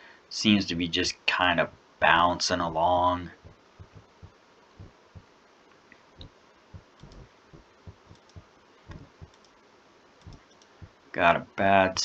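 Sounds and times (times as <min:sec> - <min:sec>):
computer mouse clicks: 0:06.9 - 0:07.3, 0:07.9 - 0:09.6, 0:10.2 - 0:10.8.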